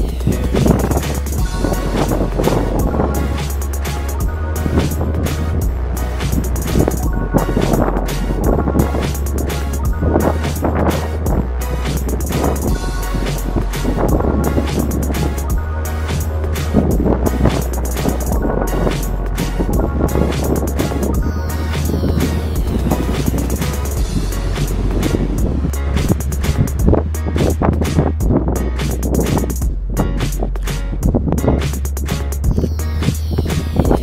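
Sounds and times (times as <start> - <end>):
background music with steady beat: 0.0 - 34.0.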